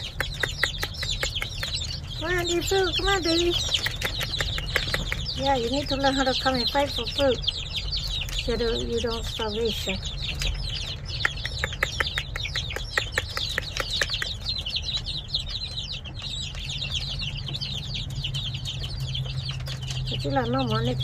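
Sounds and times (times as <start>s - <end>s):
baby chicks peeping: 0.0s - 21.0s.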